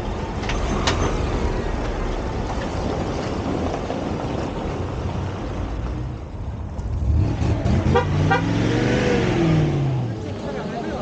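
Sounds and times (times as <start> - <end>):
car horn toots: 7.8 - 8.7.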